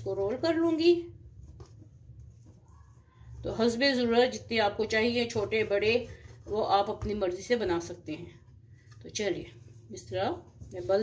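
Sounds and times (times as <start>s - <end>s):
hands rubbing dough on wooden board: 0.0s - 11.0s.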